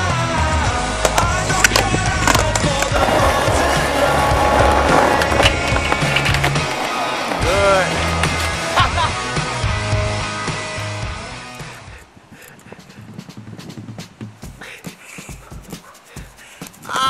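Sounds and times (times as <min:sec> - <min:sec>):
rock music: 0:00.0 - 0:11.9
skateboard wheels rolling on concrete: 0:00.0 - 0:17.0
skateboard clacks: 0:01.0 - 0:08.8.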